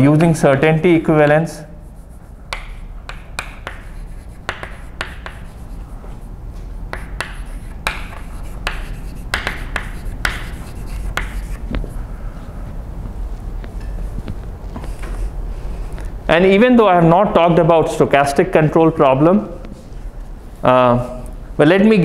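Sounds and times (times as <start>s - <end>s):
steady low hum: 0.0s - 22.0s
chalk writing on blackboard: 1.7s - 12.0s.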